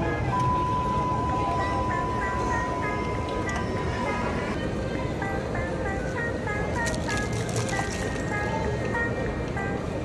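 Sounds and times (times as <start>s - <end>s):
background music: 1.7s - 10.0s.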